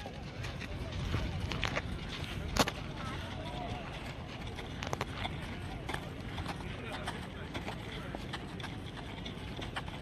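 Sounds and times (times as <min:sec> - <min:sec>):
footsteps running on dirt: 0:00.0 - 0:10.0
steady background noise: 0:00.0 - 0:10.0.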